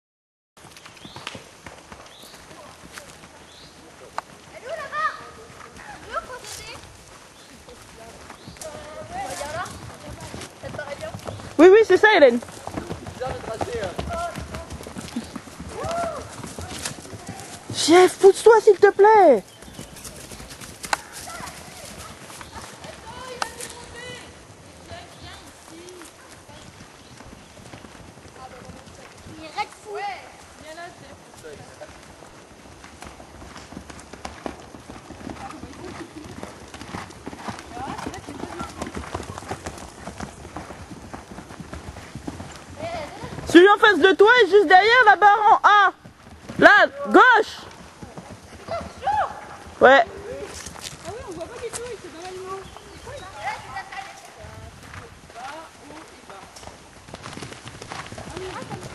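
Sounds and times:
horse hoofbeats on a track: 0.6s - 58.9s.

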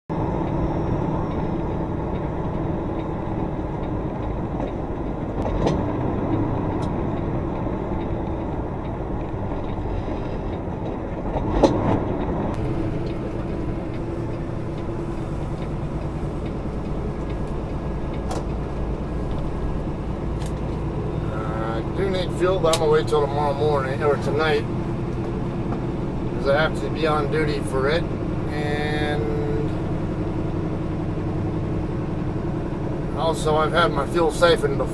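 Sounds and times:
truck diesel engine rumble: 0.1s - 34.9s.

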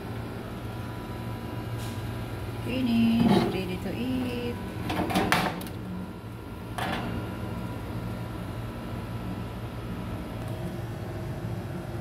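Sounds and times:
oven fan humming: 0.0s - 12.0s.

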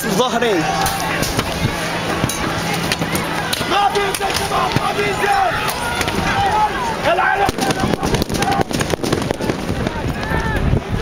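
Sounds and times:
rough low rumble: 0.6s - 11.0s
sharp pops and bangs: 0.8s - 6.3s, 7.4s - 10.7s.

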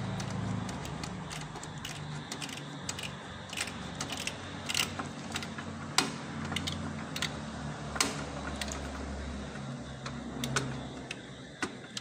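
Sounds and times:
computer parts clicking and knocking: 0.0s - 8.9s.

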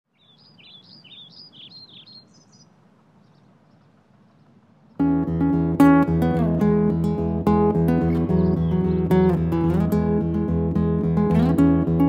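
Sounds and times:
outdoor background noise: 0.1s - 12.0s
songbird singing: 0.1s - 12.0s.

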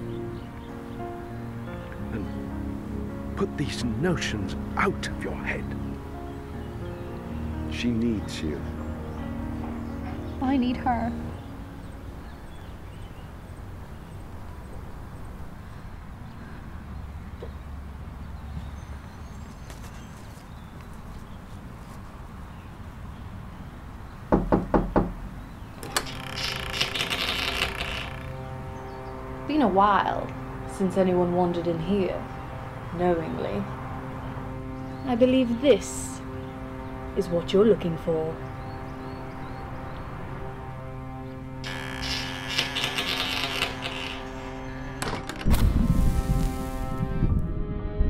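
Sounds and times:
knocking on wooden door: 24.3s - 25.2s
door creaking open: 24.4s - 28.5s, 41.6s - 45.8s
door latch click: 25.8s - 28.2s, 45.0s - 45.7s.

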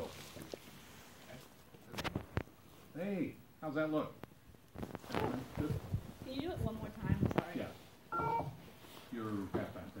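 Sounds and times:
electronic beep: 8.1s - 8.6s.

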